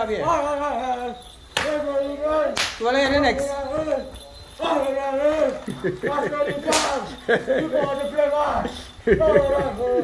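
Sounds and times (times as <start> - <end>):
voices calling and laughing: 0.0 - 10.0
whip crack: 1.6 - 1.8, 2.5 - 2.9, 6.7 - 7.0.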